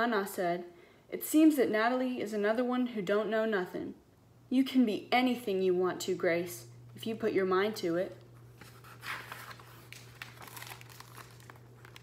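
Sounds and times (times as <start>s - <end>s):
book page turning: 8.4s - 12.0s
paper rustling: 8.4s - 12.0s.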